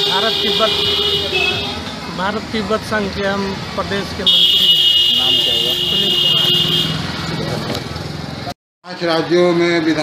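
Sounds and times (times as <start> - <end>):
voices talking: 0.0 - 8.4.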